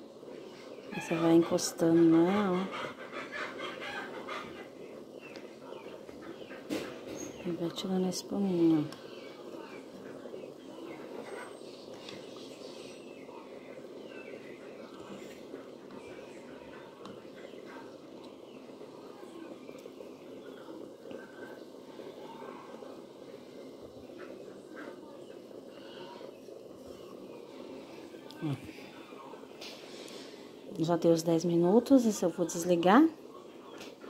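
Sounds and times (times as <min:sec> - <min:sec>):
broth bubbling in a pot: 0:00.0 - 0:34.0.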